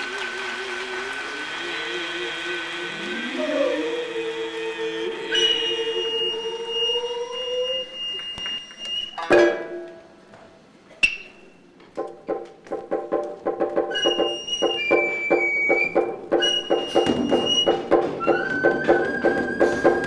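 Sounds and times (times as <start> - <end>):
voices singing wavering notes: 1.4 - 9.2.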